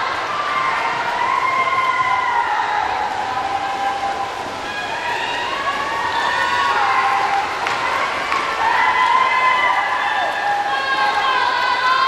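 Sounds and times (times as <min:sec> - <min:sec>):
crowd cheering and yelling: 0:00.0 - 0:12.0.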